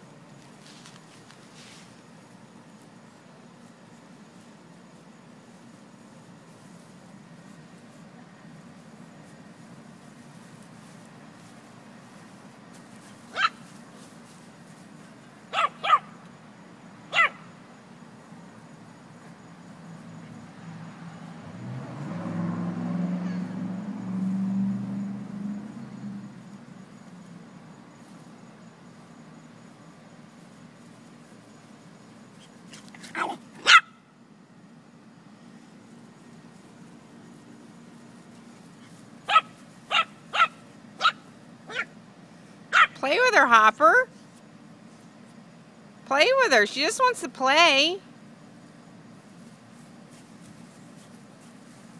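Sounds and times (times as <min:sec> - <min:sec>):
small dogs yapping: 0:13.3 - 0:13.7, 0:15.5 - 0:16.2, 0:17.1 - 0:17.5, 0:32.3 - 0:34.1, 0:38.8 - 0:42.0, 0:42.7 - 0:43.0.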